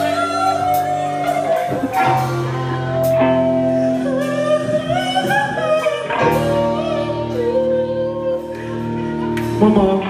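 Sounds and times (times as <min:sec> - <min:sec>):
drums: 0:00.0 - 0:10.0
electric guitar: 0:00.0 - 0:10.0
man singing: 0:03.9 - 0:08.6, 0:09.5 - 0:10.0.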